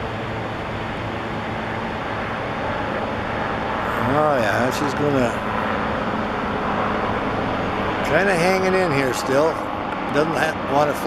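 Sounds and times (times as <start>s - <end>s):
helicopter flying overhead: 0.0s - 11.0s.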